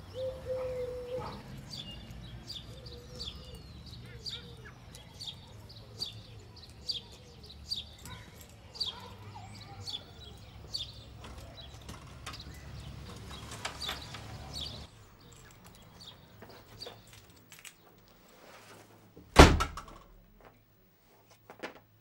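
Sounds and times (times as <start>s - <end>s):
faint birdsong: 0.0s - 18.9s
door shutting with a thud: 19.3s - 20.2s.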